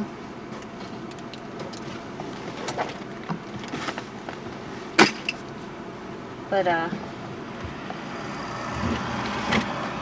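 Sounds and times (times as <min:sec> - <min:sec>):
low car interior noise: 0:00.0 - 0:10.0.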